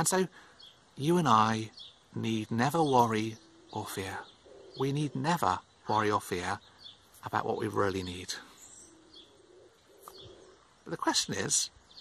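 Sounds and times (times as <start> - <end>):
bird cooing: 2.7 - 6.0, 8.0 - 10.8.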